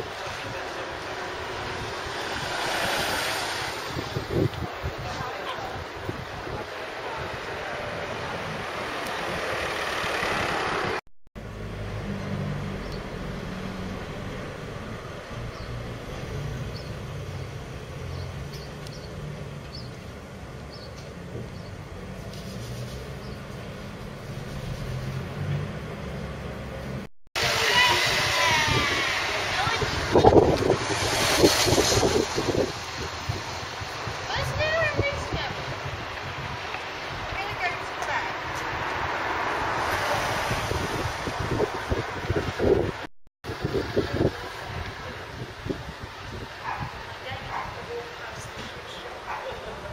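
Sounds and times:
street noise: 0.0s - 49.9s
people's voices: 46.6s - 49.9s.

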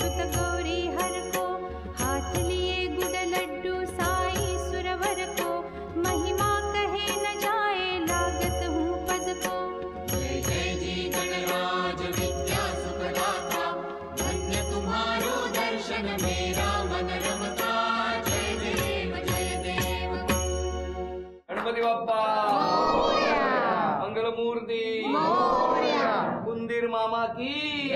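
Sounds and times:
voices chanting and singing: 10.1s - 20.5s, 22.2s - 26.6s
voices calling out devotional cry: 22.2s - 24.2s, 24.9s - 26.5s.

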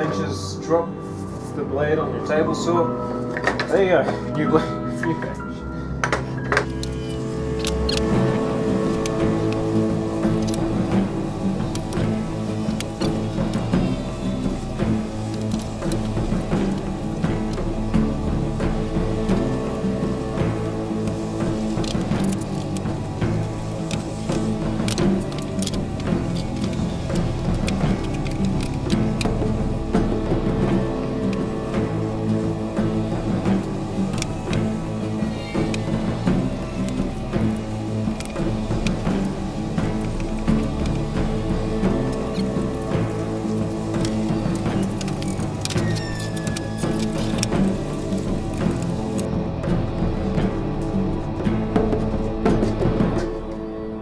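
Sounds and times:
soundtrack music with low rhythm: 0.0s - 54.0s.

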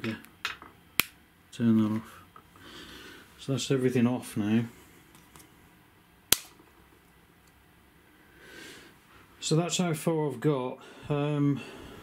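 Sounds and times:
sharp switch click: 6.3s - 6.6s.

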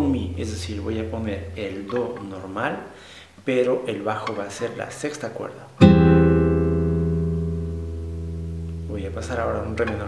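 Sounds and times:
classical guitar chord ringing: 0.0s - 2.5s, 5.8s - 10.0s.

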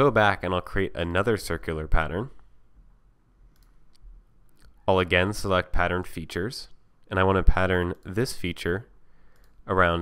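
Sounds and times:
computer mouse clicks: 3.5s - 4.8s, 9.3s - 9.6s.

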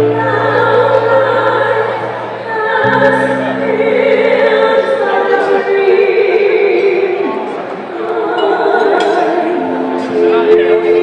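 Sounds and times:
musical accompaniment: 0.0s - 11.0s
singers in harmony: 0.0s - 11.0s.

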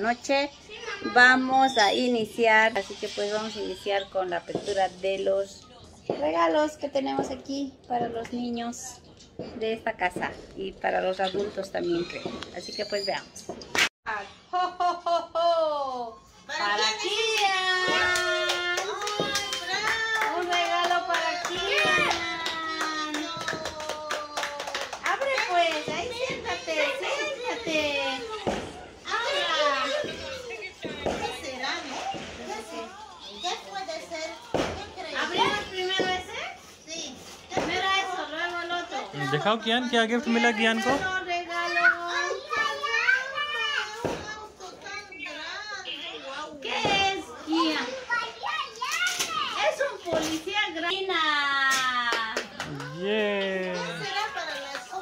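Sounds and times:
children talking and calling out: 0.0s - 4.9s, 15.8s - 39.4s, 40.4s - 51.1s, 51.7s - 55.0s
hand clapping: 18.0s - 26.0s.

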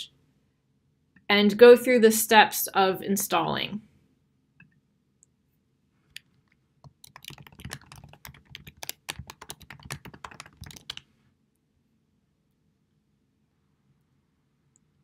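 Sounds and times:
computer keyboard typing: 6.2s - 11.0s.

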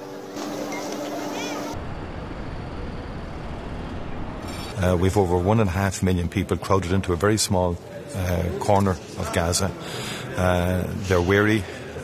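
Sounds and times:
distant traffic rumble: 0.0s - 6.7s.

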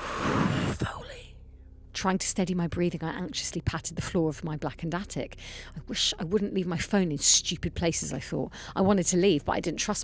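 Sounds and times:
faint breathing: 5.4s - 5.7s.

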